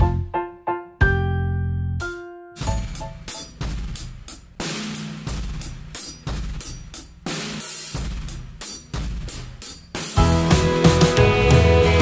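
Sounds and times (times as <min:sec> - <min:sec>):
acoustic drum kit groove: 0:02.0 - 0:12.0.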